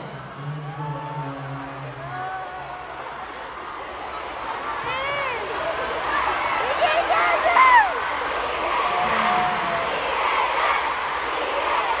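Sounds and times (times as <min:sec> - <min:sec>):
crowd cheering and screaming: 0:00.0 - 0:12.0.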